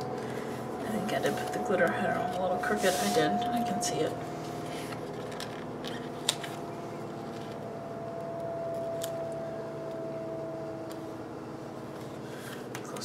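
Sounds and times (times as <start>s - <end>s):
faint held tone: 0.0s - 12.2s
room hum: 0.0s - 13.0s.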